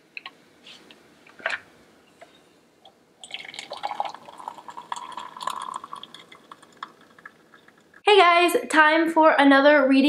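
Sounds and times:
water pouring into a mug: 3.2 - 8.0.

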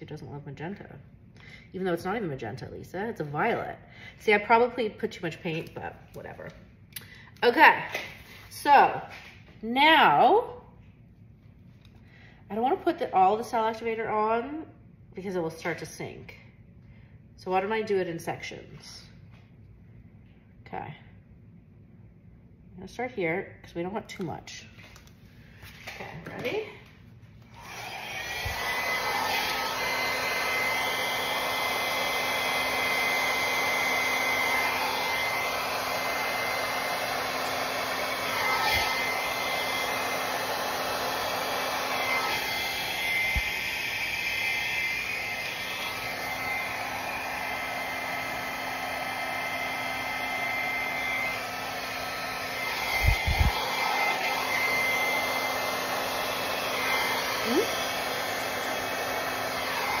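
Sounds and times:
hair dryer whining: 1.7 - 6.4, 25.7 - 60.0.

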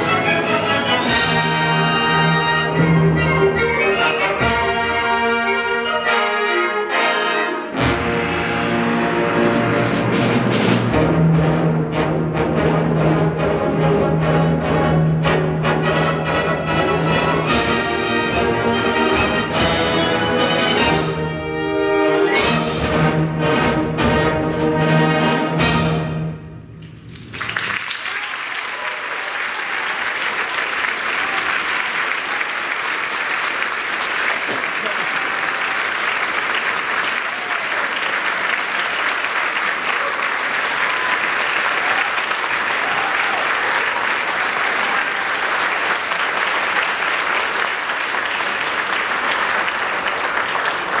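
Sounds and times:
audience applause: 27.2 - 51.0.

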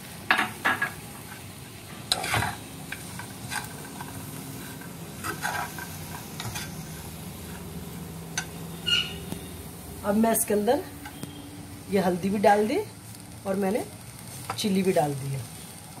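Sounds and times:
faint sizzle: 0.0 - 16.0
spatula scraping frying pan: 2.1 - 7.8.

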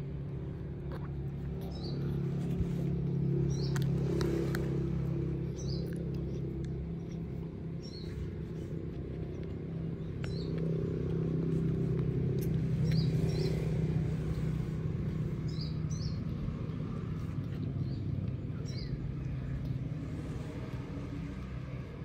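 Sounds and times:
engine humming: 0.0 - 22.0.

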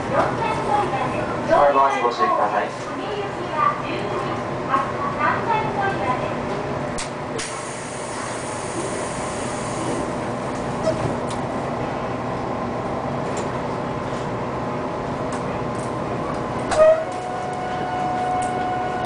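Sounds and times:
train running rumble: 2.3 - 19.0
short loud tone: 16.7 - 19.0.

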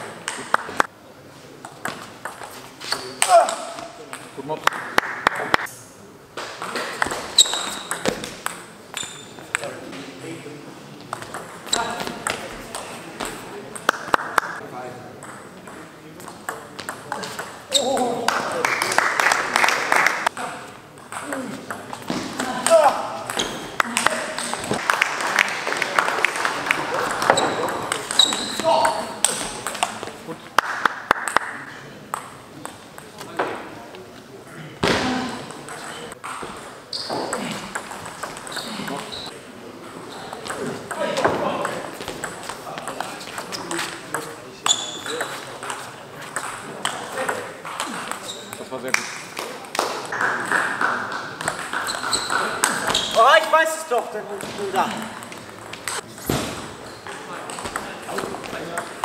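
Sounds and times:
voices in background: 0.0 - 59.0
table tennis balls clicking: 11.1 - 12.9, 21.0 - 33.6, 35.5 - 39.2, 39.8 - 53.2.

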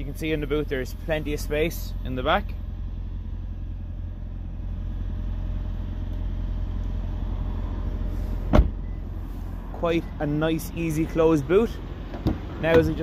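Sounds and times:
car tailgate thump: 8.5 - 8.8.

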